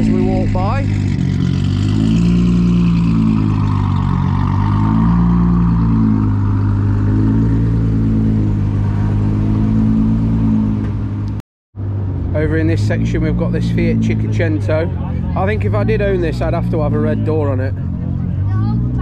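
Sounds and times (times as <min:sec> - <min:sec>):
car engine running: 0:00.0 - 0:19.0.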